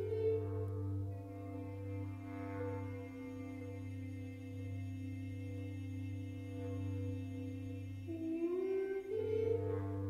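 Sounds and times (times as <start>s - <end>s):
bass clarinet sustained notes: 0.0s - 10.0s.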